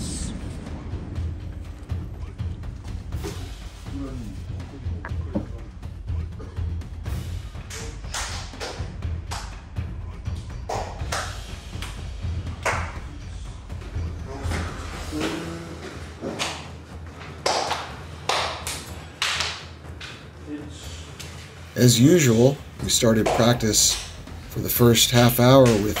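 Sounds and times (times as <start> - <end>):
music with steady low beat: 0.0 - 26.0.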